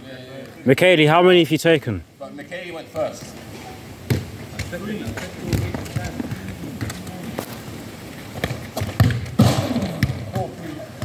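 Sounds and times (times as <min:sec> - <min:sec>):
sharp knocks and thuds: 0:08.4 - 0:10.5.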